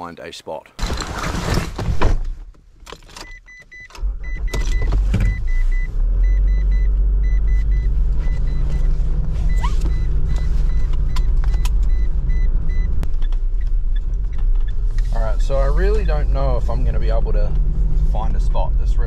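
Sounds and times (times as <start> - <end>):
car engine starting and running: 0.8 - 19.0
dashboard warning chime beeping: 3.2 - 13.0
clicks from cabin controls: 9.7 - 12.0.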